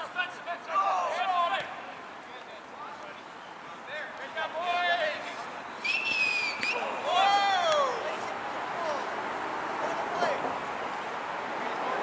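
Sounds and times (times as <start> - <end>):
man shouting: 0.0 - 1.6
high whistle blast: 5.8 - 7.0.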